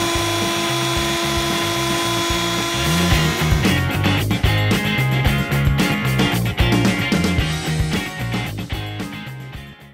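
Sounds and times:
handheld vacuum running: 0.0s - 4.0s.

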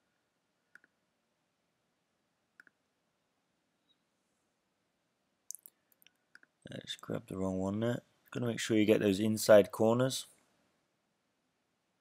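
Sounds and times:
computer mouse clicks: 0.7s - 1.0s, 2.6s - 2.8s.

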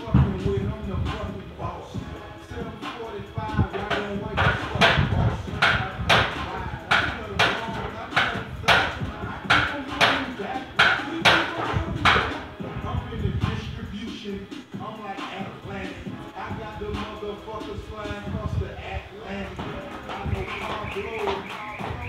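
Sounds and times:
hip-hop music: 0.0s - 22.0s.

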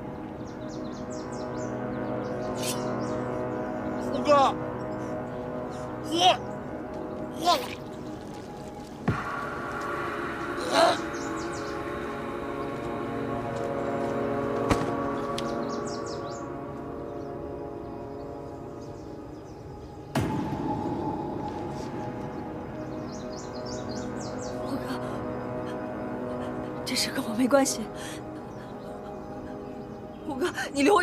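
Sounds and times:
birds chirping faintly: 0.0s - 31.0s
tense drone score: 0.0s - 31.0s
sudden sharp hit: 20.1s - 23.2s.

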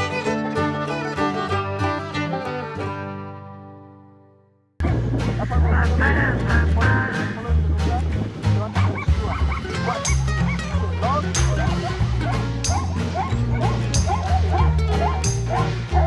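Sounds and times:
background music with bass beat: 4.8s - 16.0s
zebras barking: 5.4s - 16.0s.

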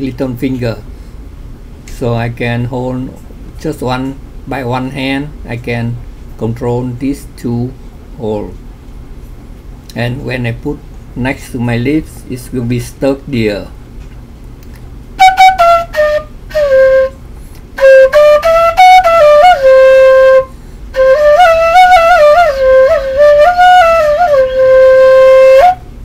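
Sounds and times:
flute melody: 15.2s - 26.0s.

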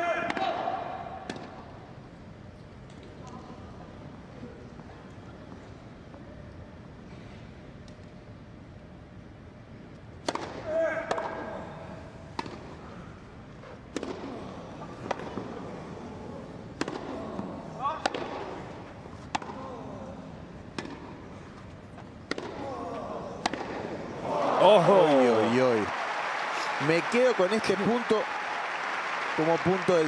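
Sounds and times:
tennis racket hitting ball: 18.0s - 18.5s, 20.7s - 21.2s, 22.2s - 22.6s, 23.4s - 23.9s
crowd voices: 22.9s - 30.0s.

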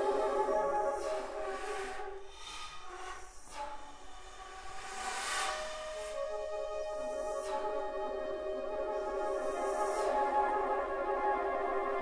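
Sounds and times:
breathy air noise: 0.0s - 6.2s.

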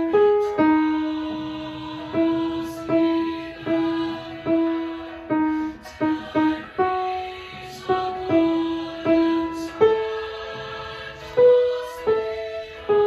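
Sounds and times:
grand piano melody: 0.0s - 13.0s.

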